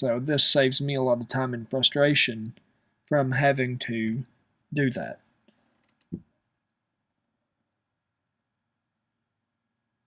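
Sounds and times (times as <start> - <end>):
person speaking: 0.0 - 5.2.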